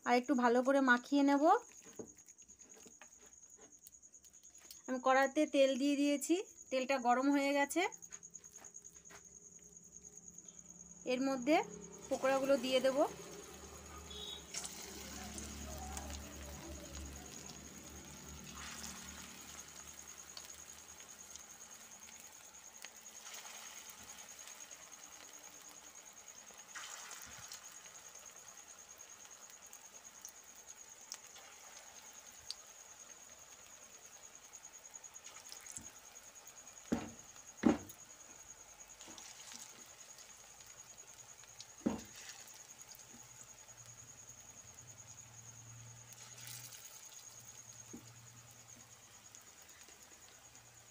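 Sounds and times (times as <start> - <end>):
food deep-frying in oil: 0.0 - 8.7, 9.4 - 50.9
sharp knocks: 36.9 - 37.9.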